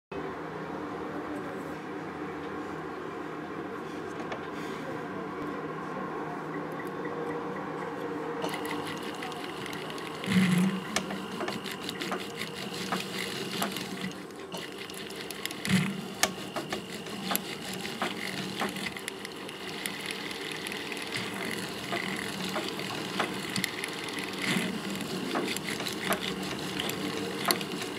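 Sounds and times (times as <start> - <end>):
powered handpiece running: 8.4 - 27.9.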